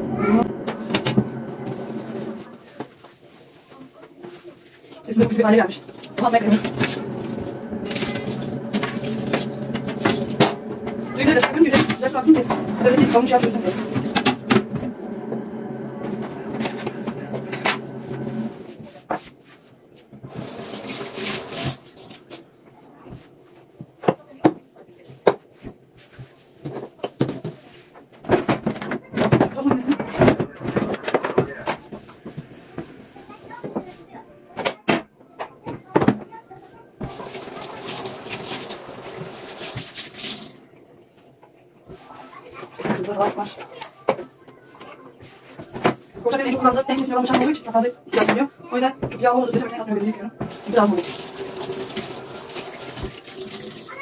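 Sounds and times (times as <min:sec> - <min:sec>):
tap water running: 0:00.0 - 0:02.4, 0:05.1 - 0:18.7, 0:20.2 - 0:22.4, 0:37.0 - 0:40.9, 0:49.0 - 0:54.0
metal dishes clinking in sink: 0:05.2 - 0:14.6.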